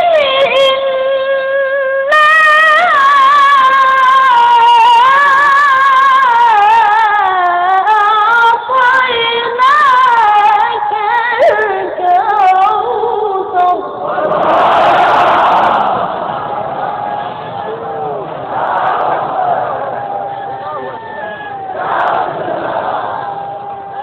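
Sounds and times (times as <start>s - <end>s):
audience calling out together: 14.0s - 24.0s.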